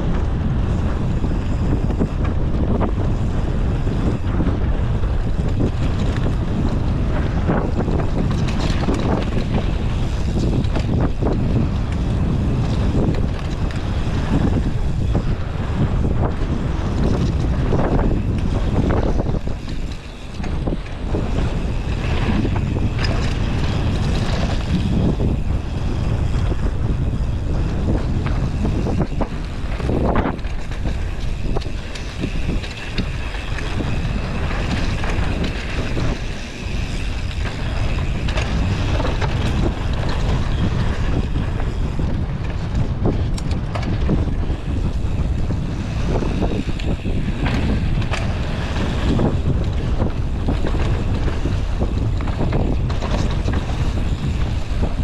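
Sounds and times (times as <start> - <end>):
bike knocks and rattles: 0.0 - 55.0
tyre noise on dirt trail: 0.0 - 55.0
wind rushing over microphone: 0.0 - 55.0.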